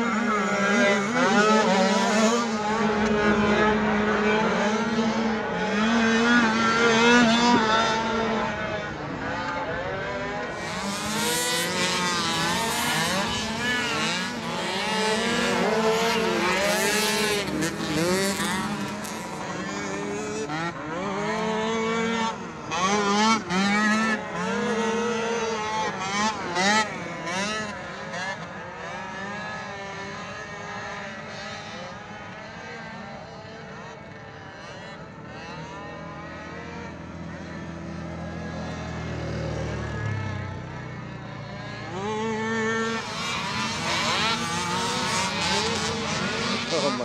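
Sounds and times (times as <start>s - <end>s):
quad engines revving: 0.0s - 47.0s.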